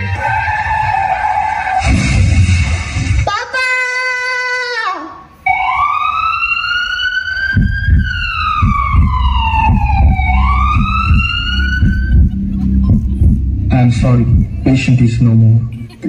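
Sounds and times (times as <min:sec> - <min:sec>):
ambulance siren over loudspeakers: 0:05.4 - 0:12.3
low rumbling: 0:07.6 - 0:15.8.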